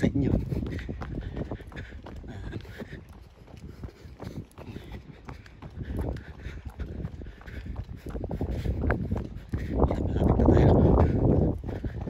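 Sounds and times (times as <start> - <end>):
running footsteps on asphalt: 0.0 - 12.0
wind rumbling on microphone: 0.0 - 12.0.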